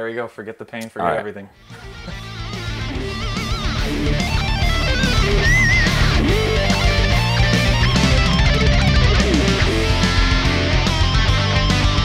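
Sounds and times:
electric guitar lead with vibrato: 1.6 - 12.0.

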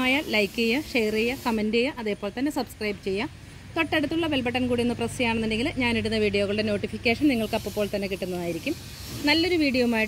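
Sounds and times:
spray bottle hissing: 0.0 - 1.8, 7.2 - 10.0.

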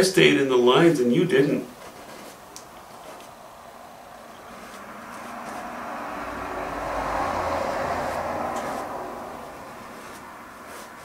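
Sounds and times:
vehicle passing by: 2.8 - 11.0.

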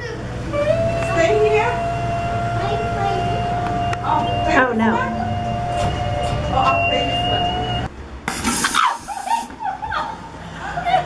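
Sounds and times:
hiss of noise: 8.3 - 9.6
woman laughing: 8.8 - 11.0.

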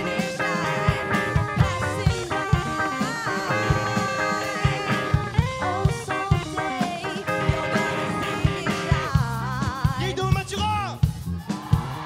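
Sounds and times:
electric guitar notes: 0.0 - 9.9
bass: 0.0 - 12.0
drum kit beat: 0.0 - 12.0.

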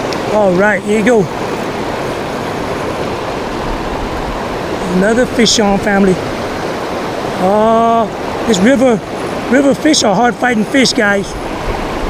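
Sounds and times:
river rushing over rocks: 0.0 - 12.0.

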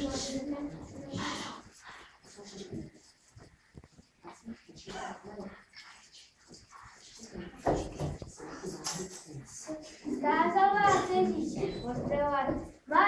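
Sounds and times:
soft shuffling: 0.0 - 13.0.

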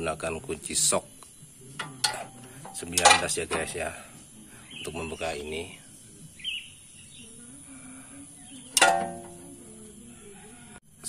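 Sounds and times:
wrench clanking on metal: 1.8 - 3.8, 8.7 - 9.5.

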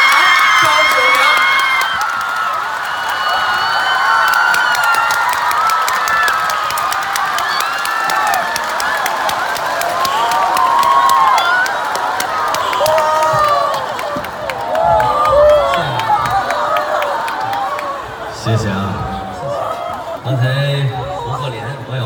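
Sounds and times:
people clapping: 0.0 - 18.3
audience cheering: 0.0 - 21.5.

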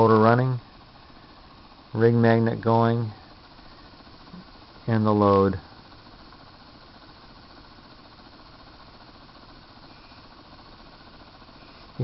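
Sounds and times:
corona discharge hissing: 0.0 - 12.0.

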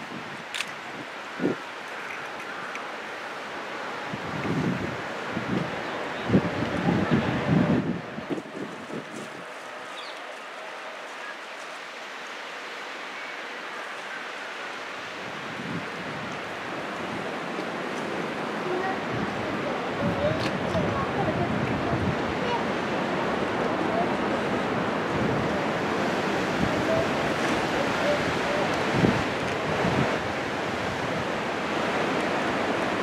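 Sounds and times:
wind gusts buffeting microphone: 0.0 - 3.4, 4.0 - 10.1, 14.4 - 33.0
steady outdoor hiss: 0.0 - 33.0.

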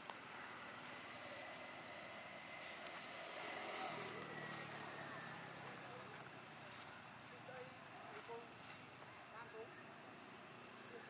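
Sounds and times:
distant traffic: 0.0 - 11.0
vehicle engine hum: 0.0 - 11.0.

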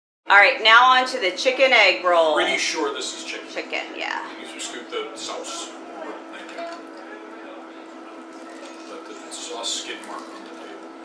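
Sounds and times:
low electrical hum: 0.3 - 11.0
faint indistinct voices: 3.3 - 11.0.

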